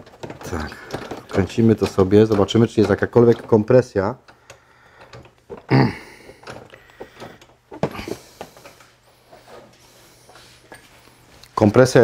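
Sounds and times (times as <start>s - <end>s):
faint rustling: 0.0s - 12.0s
tool handling noises: 0.0s - 12.0s.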